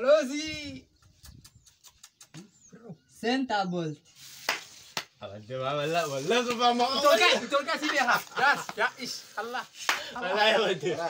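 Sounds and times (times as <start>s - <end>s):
men talking and laughing: 0.0s - 3.5s, 4.9s - 11.0s
sharp smack: 4.4s - 5.2s.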